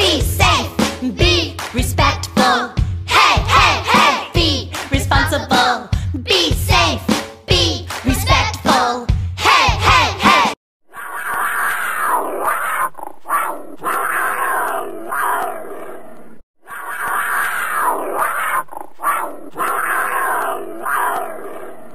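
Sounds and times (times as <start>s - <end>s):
big cat snarling and growling: 11.0s - 21.9s.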